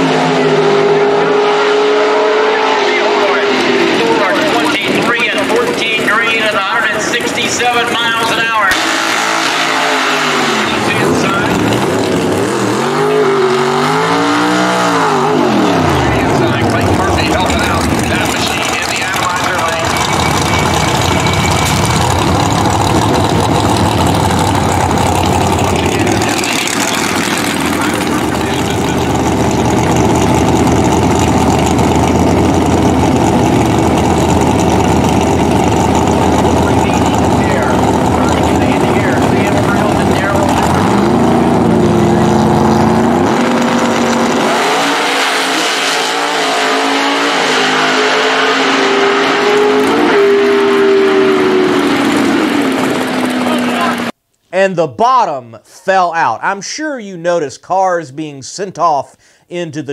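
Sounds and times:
drag car engines roaring: 0:00.0 - 0:54.2.

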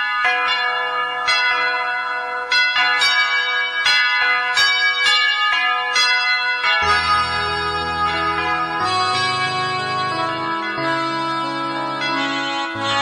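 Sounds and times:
bells ringing: 0:00.0 - 0:13.0
low sustained keyboard chord: 0:06.8 - 0:13.0.

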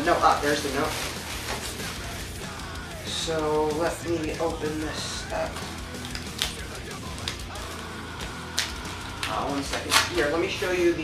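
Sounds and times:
packaging crinkling: 0:00.0 - 0:02.3.

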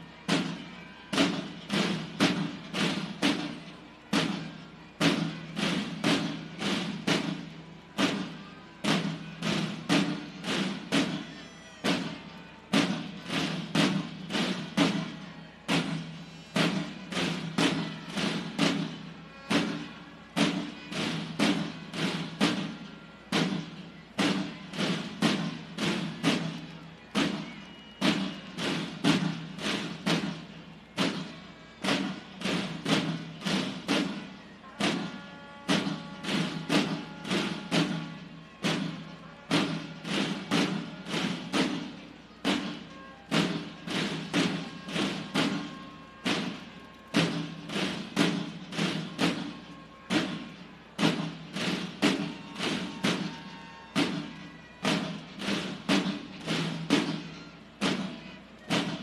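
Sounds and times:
soldiers marching on hard floor: 0:31.9 - 0:59.0.

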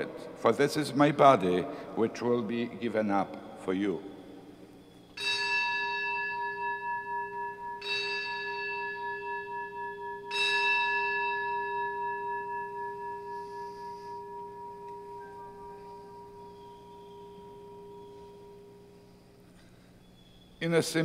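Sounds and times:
bell ringing: 0:05.2 - 0:18.8.

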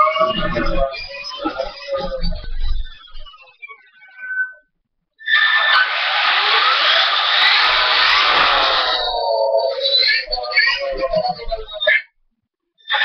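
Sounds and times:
rc truck motor whine: 0:05.4 - 0:10.9.

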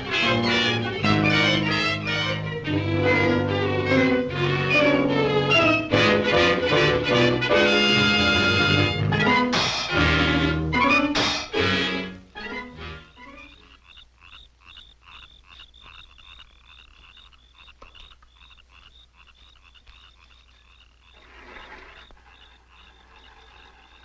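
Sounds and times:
brassy swing music: 0:00.0 - 0:13.4
frogs chirping: 0:12.4 - 0:24.0.

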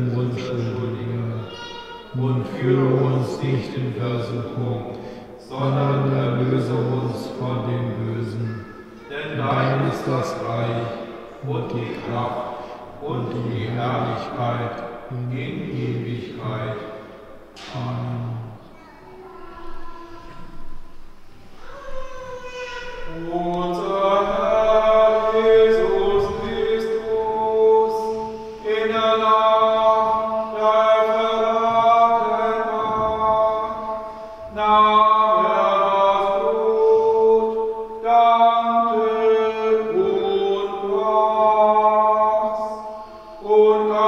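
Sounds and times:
man chanting: 0:00.0 - 0:18.7, 0:22.9 - 0:44.0
slow church music chords: 0:00.0 - 0:44.0
voices singing slow chant: 0:00.0 - 0:44.0.

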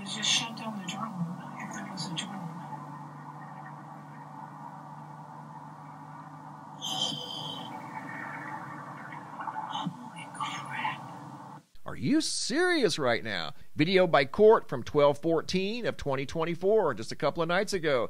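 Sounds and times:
low hum and hiss: 0:00.0 - 0:18.0
brief high tone: 0:06.8 - 0:08.0.

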